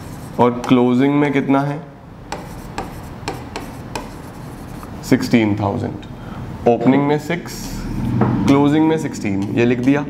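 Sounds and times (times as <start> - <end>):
marker pen writing on board: 2.3 - 4.9
man speaking: 6.6 - 7.8.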